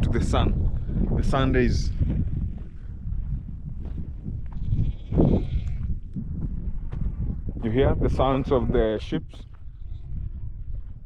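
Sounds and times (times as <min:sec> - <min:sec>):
wind rumble on microphone: 0:00.0 - 0:11.0
sheep bleating: 0:04.5 - 0:05.9.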